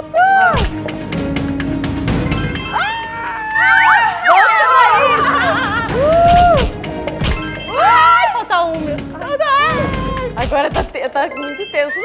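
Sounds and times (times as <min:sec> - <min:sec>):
people squealing and shrieking: 0:02.6 - 0:06.8, 0:07.7 - 0:08.4.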